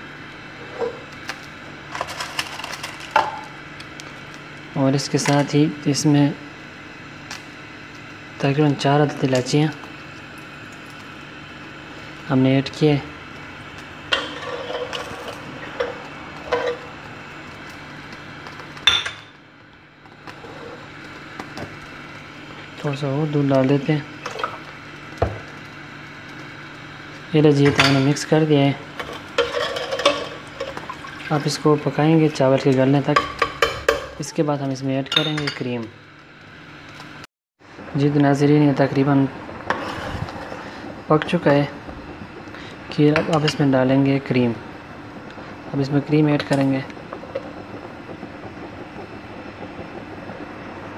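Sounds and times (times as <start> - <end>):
steady low hum: 0.0 - 50.9
metal utensil scraping a pot: 14.1 - 16.9, 29.0 - 30.8.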